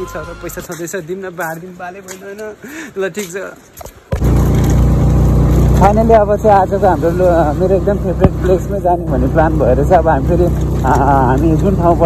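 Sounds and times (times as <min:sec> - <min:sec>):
man talking: 0:00.0 - 0:03.8, 0:05.8 - 0:12.0
vehicle engine running: 0:04.2 - 0:12.0.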